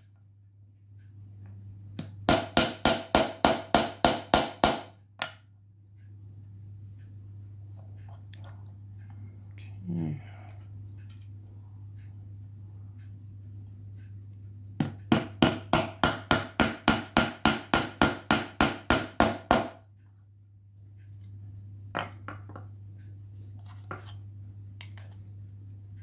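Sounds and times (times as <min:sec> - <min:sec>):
low hum: 0:05.0 - 0:15.2.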